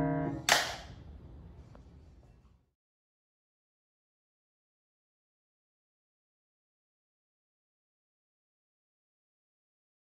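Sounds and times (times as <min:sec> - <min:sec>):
piano chord: 0:00.0 - 0:00.5
hand clap: 0:00.4 - 0:00.9.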